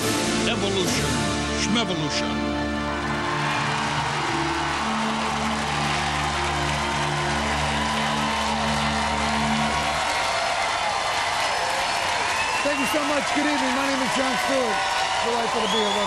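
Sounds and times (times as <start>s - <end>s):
tv theme music: 0.0s - 10.9s
studio audience applauding and cheering: 2.0s - 16.0s.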